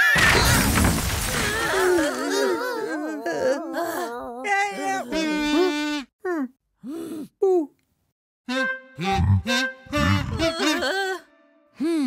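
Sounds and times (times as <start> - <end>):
cartoon clattering crash: 0.0 - 1.8
voice crying out: 9.1 - 11.3.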